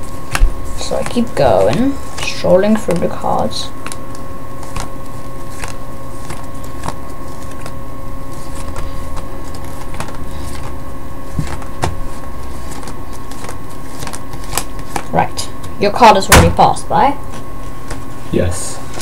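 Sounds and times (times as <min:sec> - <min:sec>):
steady hum with faint whine: 0:00.0 - 0:19.0.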